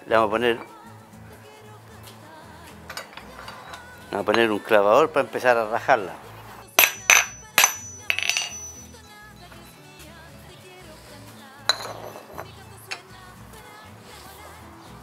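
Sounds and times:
metal clinking against vise: 0:06.8 - 0:09.0.

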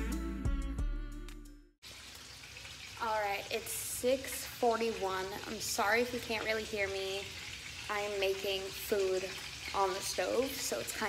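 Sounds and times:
music: 0:00.0 - 0:01.8
chicken sizzling in a frying pan: 0:01.8 - 0:11.0
woman speaking: 0:03.0 - 0:07.3, 0:07.9 - 0:11.0.

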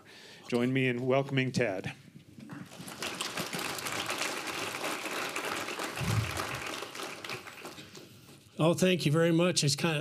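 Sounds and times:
audience applauding: 0:02.7 - 0:08.2
low thud: 0:06.0 - 0:06.6.

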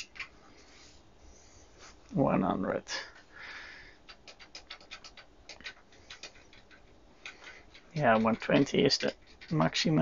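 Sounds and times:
rapid key press clicking: 0:04.1 - 0:10.0.

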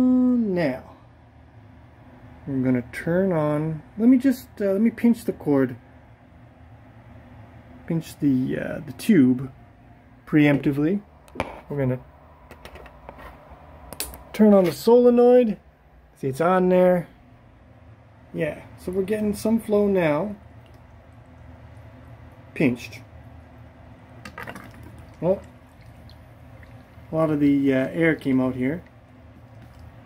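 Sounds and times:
water sputtering from plastic tube: 0:24.2 - 0:27.2.

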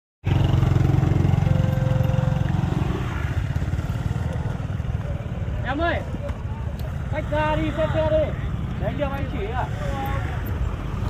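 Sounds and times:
motor scooter engine running: 0:00.2 - 0:11.0.

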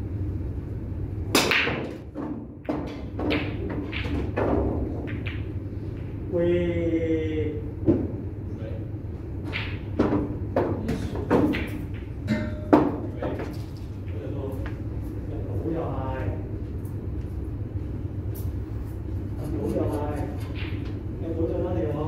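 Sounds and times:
steady low hum: 0:00.0 - 0:22.0.

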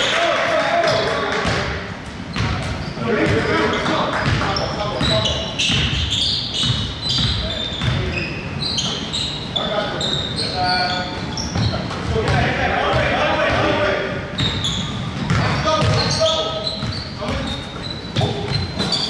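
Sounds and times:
sneaker squeaks: 0:00.8 - 0:19.0
basketball bouncing on hardwood: 0:04.2 - 0:06.0, 0:15.2 - 0:16.2.

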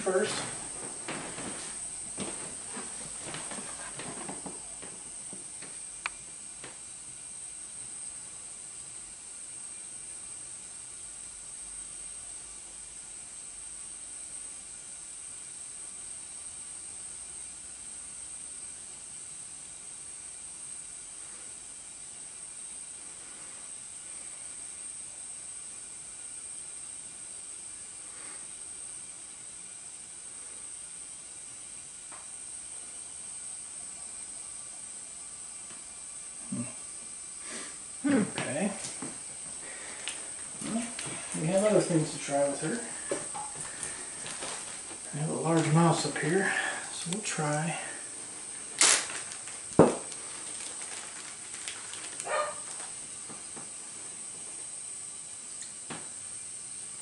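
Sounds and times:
steady high-pitched hiss: 0:00.0 - 0:57.0.

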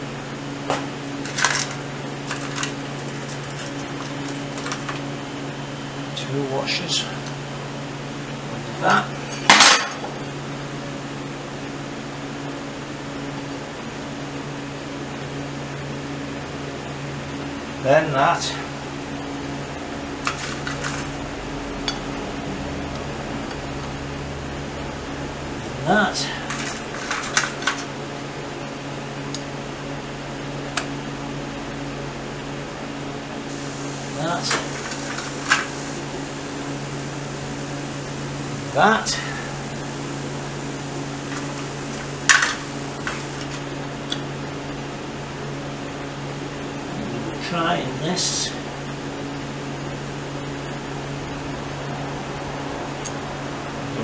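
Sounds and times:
metal parts clinking: 0:09.5 - 0:10.1
low steady hum: 0:15.0 - 0:54.0.

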